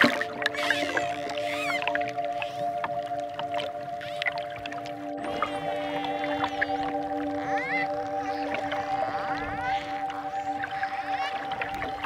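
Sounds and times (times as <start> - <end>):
dolphin clicks: 0.0 - 4.7
calm relaxation music chord: 0.0 - 12.0.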